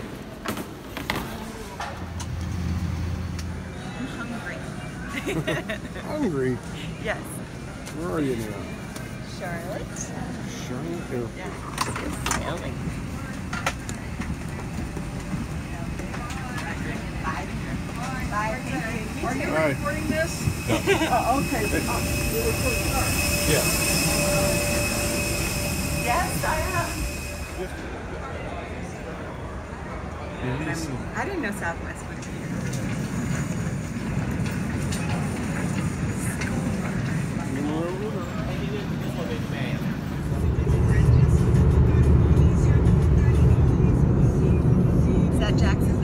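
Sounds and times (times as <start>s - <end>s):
people talking: 9.3s - 24.7s, 26.0s - 33.0s, 36.2s - 46.0s
airliner cabin rumble: 11.6s - 28.2s, 39.5s - 46.0s.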